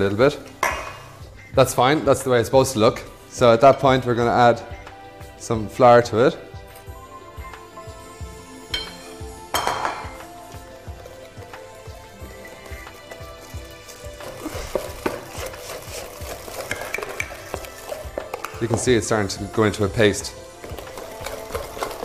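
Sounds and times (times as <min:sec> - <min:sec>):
background music with steady beat: 0:00.0 - 0:22.0
spoon clinking against bowl: 0:08.7 - 0:10.2
stirring in a steel mixing bowl: 0:10.4 - 0:22.0.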